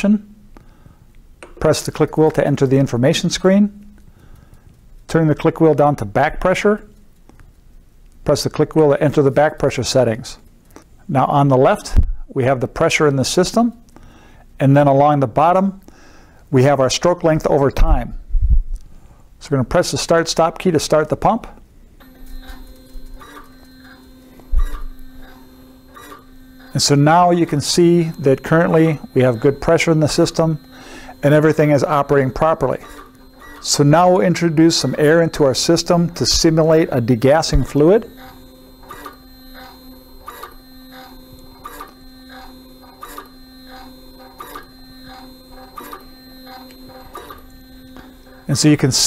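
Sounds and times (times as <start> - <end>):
pump stroke clicks: 22.0 - 26.8, 37.5 - 48.4
dosing pump motor hum: 22.0 - 49.0.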